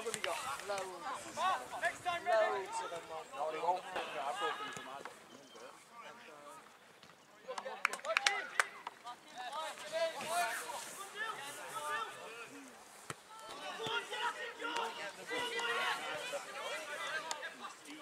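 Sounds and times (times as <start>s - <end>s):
distant shouts and calls: 7.4s - 18.0s.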